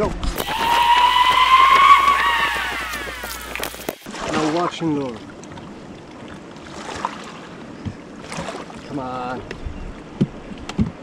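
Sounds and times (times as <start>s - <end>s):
man's high-pitched woo: 0.4s - 3.7s.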